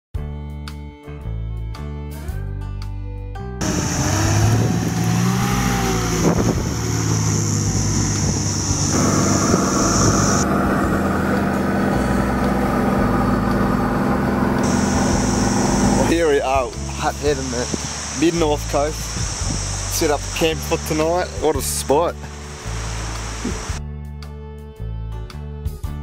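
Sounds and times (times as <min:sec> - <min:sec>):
road noise: 0:03.6 - 0:23.8
vehicle engine running: 0:03.6 - 0:23.8.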